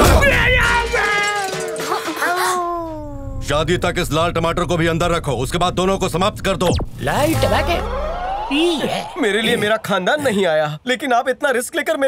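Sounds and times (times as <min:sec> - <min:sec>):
man wailing: 0:02.3 - 0:03.4.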